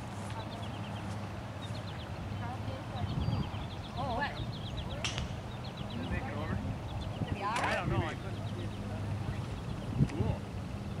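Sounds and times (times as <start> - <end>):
low outdoor rumble: 0.0 - 11.0
bird chirping: 0.2 - 11.0
sharp click: 5.0 - 5.4.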